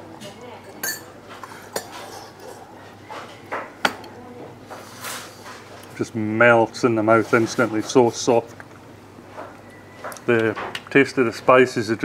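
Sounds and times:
metal spoon clinking against bowl: 0.6s - 2.6s.

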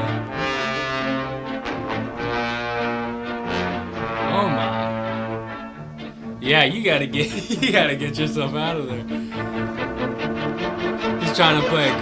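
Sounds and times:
orchestral brass chords: 0.0s - 12.0s.

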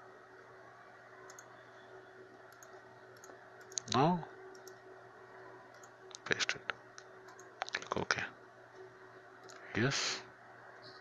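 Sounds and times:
low steady hum: 0.0s - 11.0s
computer mouse clicks: 1.2s - 1.8s, 2.5s - 4.9s, 5.7s - 7.9s, 9.4s - 9.7s.

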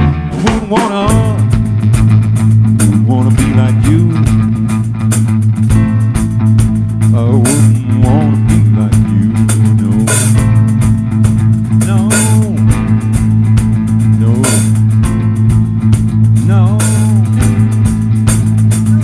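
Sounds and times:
bass guitar notes: 0.0s - 19.0s
electric guitar bending notes: 0.0s - 19.0s.

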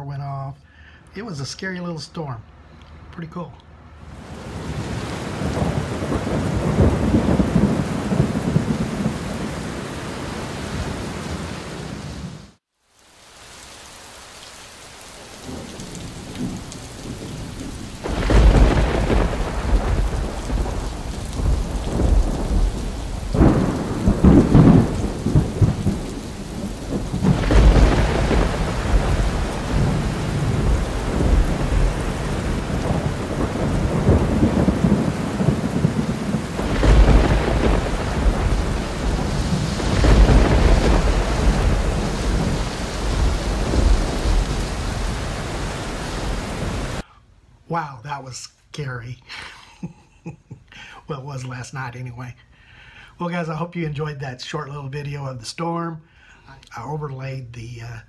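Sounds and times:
steady rain: 3.9s - 47.0s, 47.7s - 58.0s
rolling thunder: 4.2s - 12.3s, 15.4s - 47.0s.

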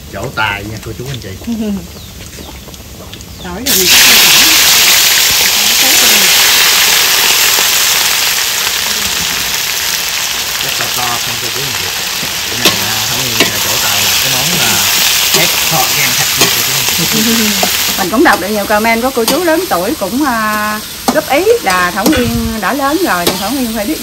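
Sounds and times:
food sizzling in a pan: 0.0s - 24.0s.

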